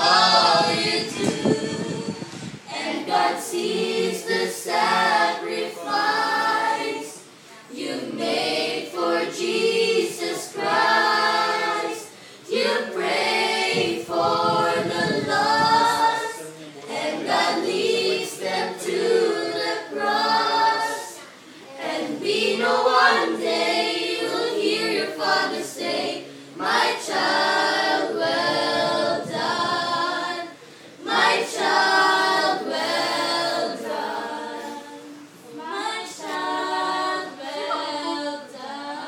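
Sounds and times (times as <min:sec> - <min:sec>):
children singing without instruments: 0:00.0 - 0:39.0.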